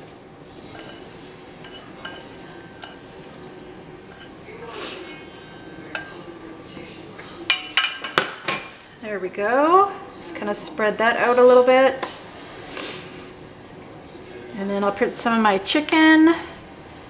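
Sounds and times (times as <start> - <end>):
metal tongs scraping a pan: 0.6 - 3.2, 4.1 - 6.3.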